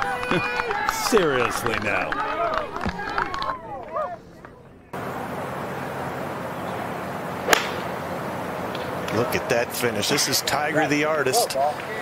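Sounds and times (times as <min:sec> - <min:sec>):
outdoor background hiss: 0:04.2 - 0:12.0
golf club striking ball: 0:07.4 - 0:08.0.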